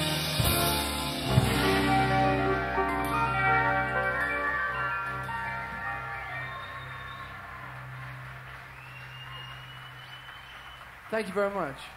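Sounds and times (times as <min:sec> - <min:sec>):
rock band sustained chord: 0:00.0 - 0:08.4.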